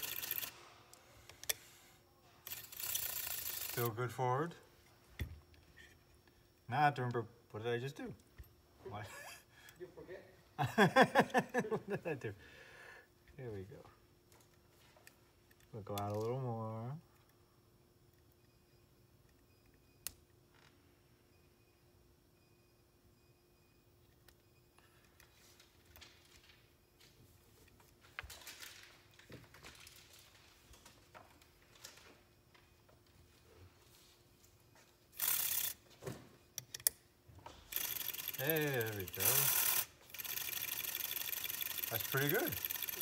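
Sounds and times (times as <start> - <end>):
small metal clicks and scrapes: 37.7 - 43.0.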